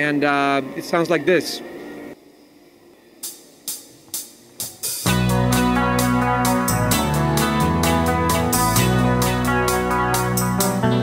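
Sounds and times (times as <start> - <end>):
electric guitar chord ringing: 5.1 - 11.0.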